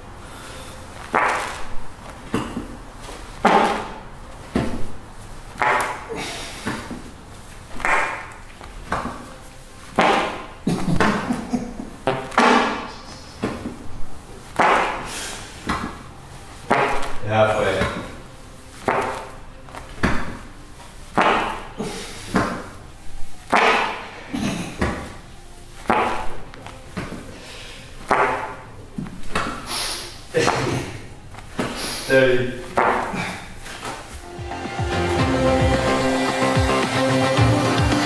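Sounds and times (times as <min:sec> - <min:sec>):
man breathing and grunting: 0:05.7 - 0:07.3, 0:14.8 - 0:15.7, 0:21.4 - 0:22.8, 0:27.2 - 0:28.8, 0:29.6 - 0:34.1.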